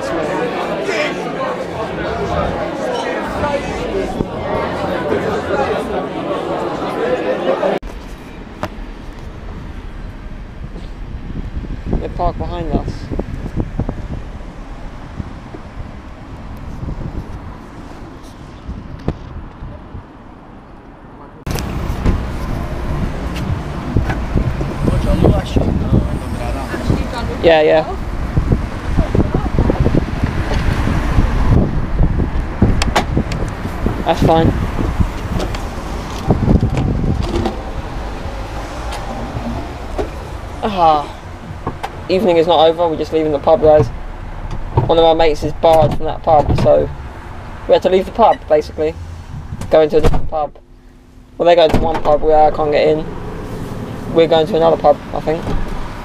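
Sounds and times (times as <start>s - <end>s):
wind buffeting microphone: 1.7s - 5.8s, 7.9s - 50.5s.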